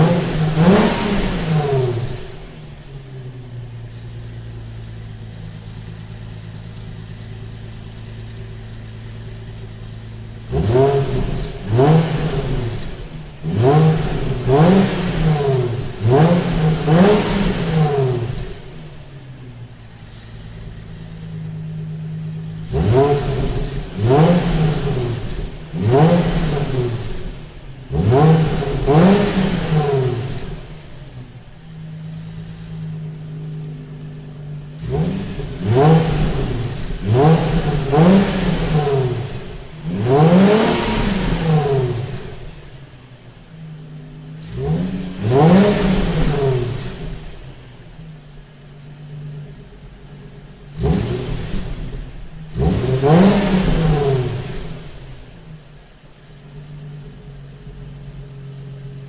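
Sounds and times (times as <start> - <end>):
car engine idling: 0.0 - 59.0
car engine revving: 0.0 - 59.0.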